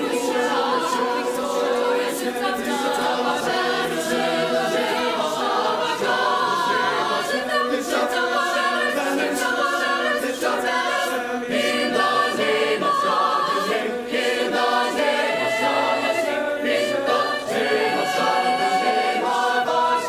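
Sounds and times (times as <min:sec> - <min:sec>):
mixed choir singing in harmony: 0:00.0 - 0:20.0.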